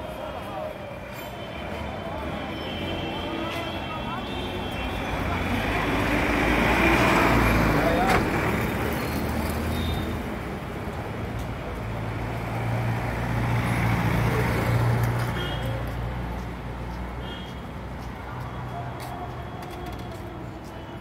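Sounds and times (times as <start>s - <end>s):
vehicles passing: 0.0s - 21.0s.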